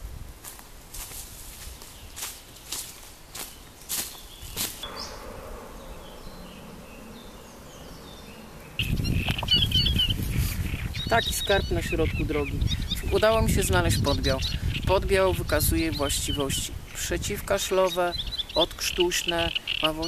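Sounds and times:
footsteps on dry leaves: 0.4 - 5.1
birds chirping: 1.7 - 20.0
low rumble: 4.8 - 11.3.

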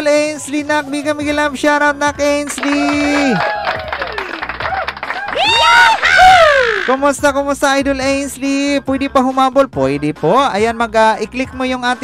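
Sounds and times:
high-pitched vocal call: 5.4 - 7.0.

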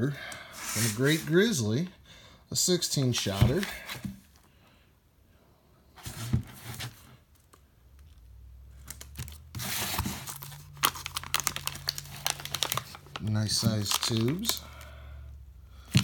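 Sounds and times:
paper wrapping tearing: 8.9 - 14.6
paper rustling: 9.0 - 14.6.

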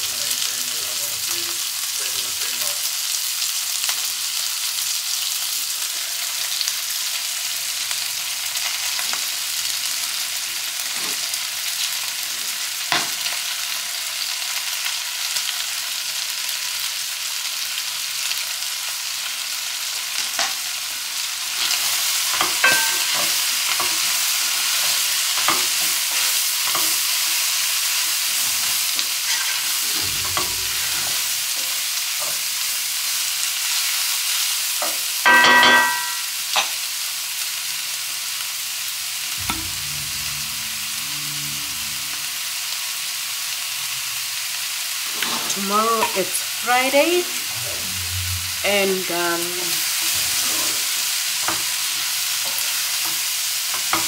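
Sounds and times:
vegetables sizzling in a frying pan: 0.0 - 54.0.

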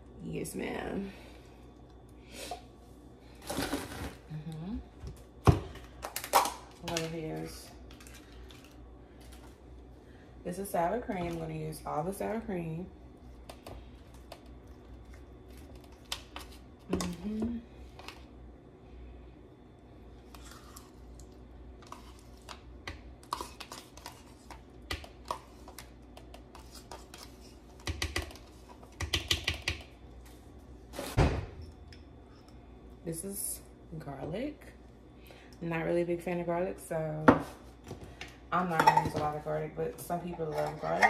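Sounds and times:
faint low hum: 0.0 - 41.0.

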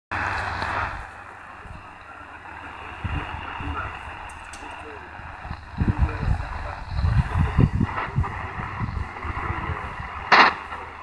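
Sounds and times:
loud rush of hiss: 0.1 - 11.0
radio static: 0.1 - 11.0.

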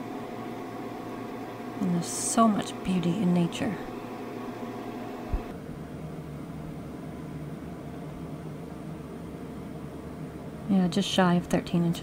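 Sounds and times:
fan-like machine hum: 0.0 - 12.0.

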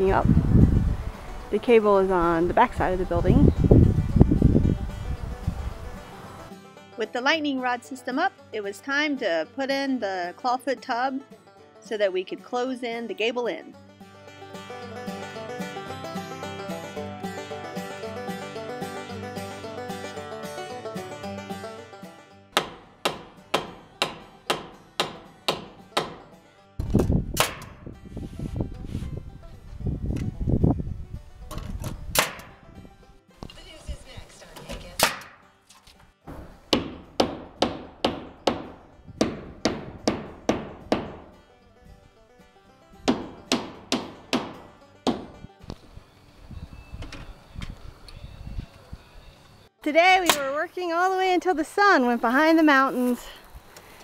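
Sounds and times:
banjo music: 0.0 - 45.8, 49.8 - 53.3
nails driven into plywood: 22.6 - 26.2, 27.0 - 27.7, 32.1 - 32.5.

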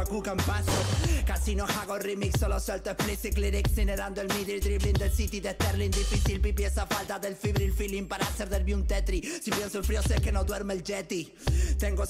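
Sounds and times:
deep bass notes: 0.0 - 1.7, 2.4 - 6.9, 7.6 - 9.2, 9.8 - 10.6
man rapping over a beat: 0.0 - 12.0.

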